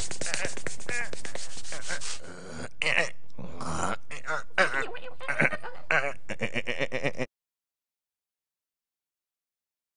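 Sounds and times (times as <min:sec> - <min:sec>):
scratchy rubbing noise: 0:00.0 - 0:02.4
squeaky animal-like vocal noises: 0:01.8 - 0:06.2.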